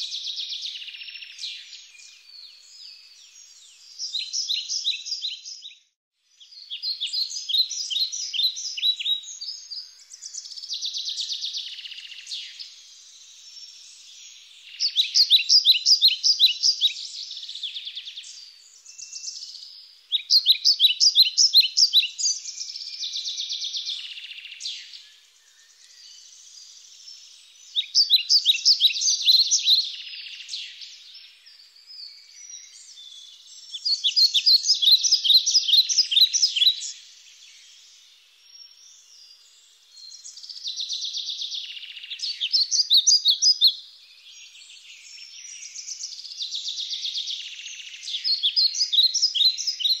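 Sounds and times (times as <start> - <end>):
quiet bird twittering: 0.0 - 50.0
songbirds chirping: 0.0 - 50.0.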